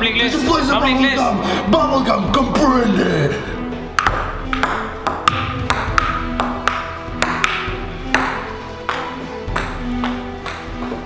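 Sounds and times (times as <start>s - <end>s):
background music: 0.0s - 11.0s
table tennis ball clicking: 4.0s - 11.0s.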